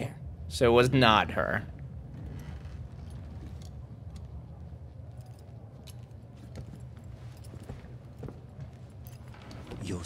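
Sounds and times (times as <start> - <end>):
low background rumble: 0.0 - 9.9.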